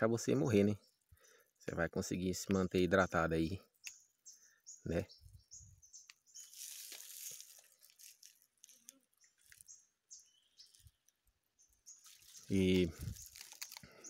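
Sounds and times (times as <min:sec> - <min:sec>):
faint bird chirps: 0:00.0 - 0:14.0.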